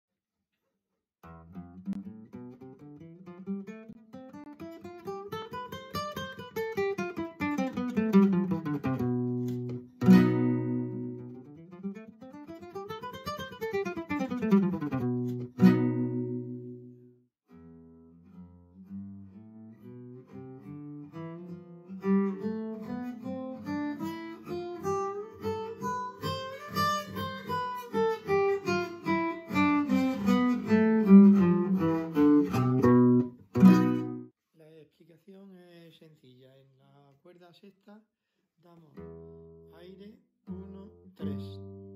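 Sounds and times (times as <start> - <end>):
strummed guitar chords: 1.3 - 11.6, 12.8 - 17.0, 20.3 - 34.3.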